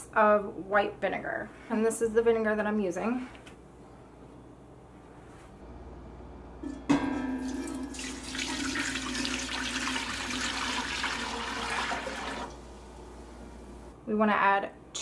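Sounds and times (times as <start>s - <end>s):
liquid pouring into a pot: 7.1s - 12.8s.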